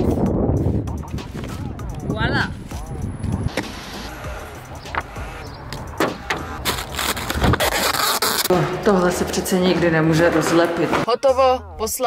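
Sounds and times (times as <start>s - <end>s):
packing tape ripping: 6.6s - 8.5s
quiet background music: 8.5s - 12.0s.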